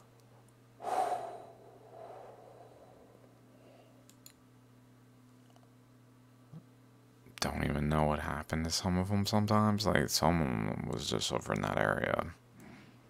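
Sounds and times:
man exhaling into microphone: 0.8 - 3.3
faint breathing: 0.8 - 4.1
soft clicks: 4.0 - 4.4.

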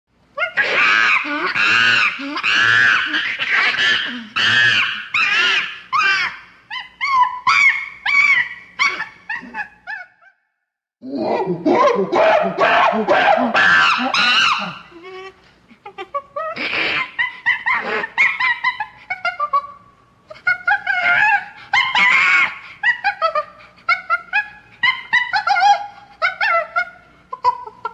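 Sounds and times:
monkey chattering: 0.4 - 10.1
monkey screeching: 0.4 - 10.4, 11.3 - 15.0, 16.4 - 19.6, 20.5 - 27.6.

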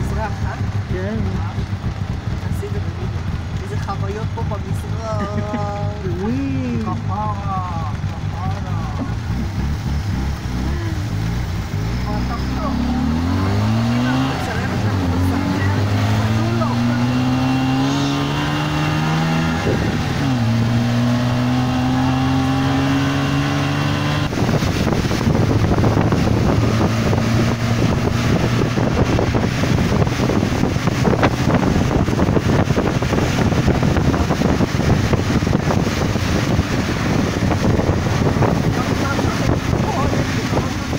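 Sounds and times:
tyres on wet road: 0.0 - 40.9
small engine accelerating: 7.5 - 40.7
wind rush: 9.1 - 40.9.

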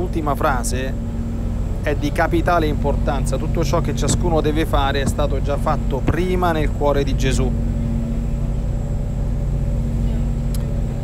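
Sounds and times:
faint high-pitched whine: 0.0 - 11.0
low rumbling hum: 0.0 - 11.0.

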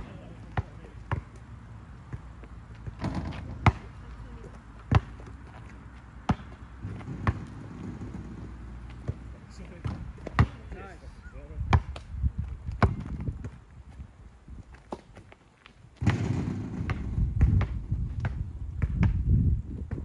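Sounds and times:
basketball bouncing on asphalt: 0.0 - 11.0, 11.6 - 20.0.

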